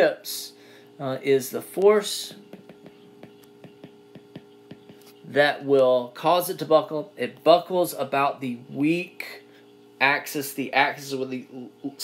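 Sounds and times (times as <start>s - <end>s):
steady hum: 0.0s - 12.0s
stylus tapping on glass screen: 2.4s - 5.2s.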